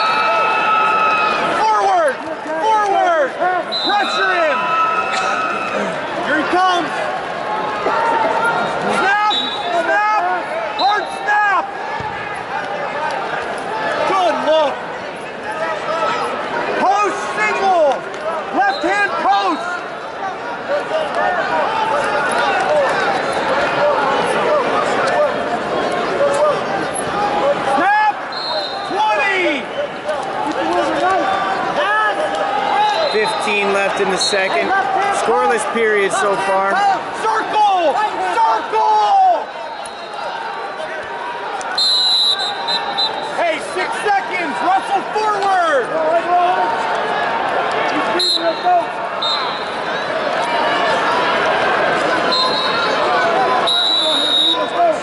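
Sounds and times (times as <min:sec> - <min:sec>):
people shouting: 0:00.0 - 0:14.7, 0:26.2 - 0:55.0
arena crowd noise: 0:00.0 - 0:55.0.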